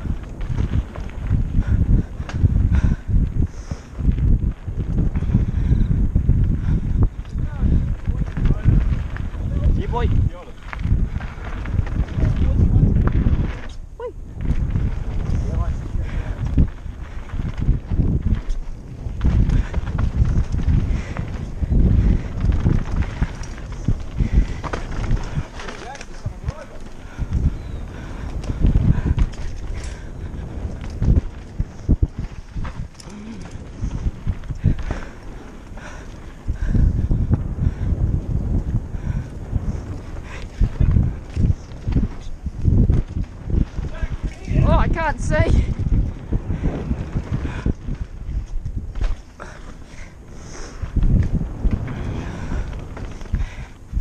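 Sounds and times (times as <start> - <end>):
bike knocking and rattling: 0.0 - 54.0
tyre rumble over dirt: 0.0 - 54.0.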